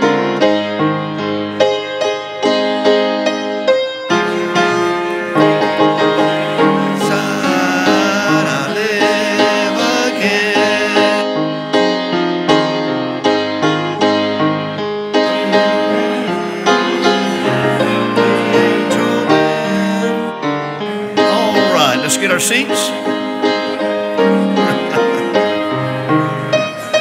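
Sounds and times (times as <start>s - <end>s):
piano playing hymn tune: 0.0s - 27.0s.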